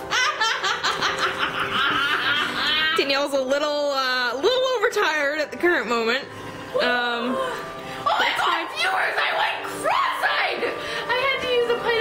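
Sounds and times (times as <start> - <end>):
girls laughing: 0.0 - 3.0.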